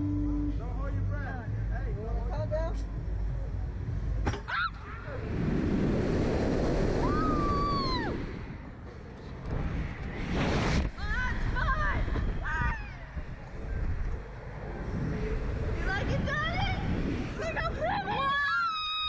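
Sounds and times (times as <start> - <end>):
air rushing over microphone: 5.0 - 18.5.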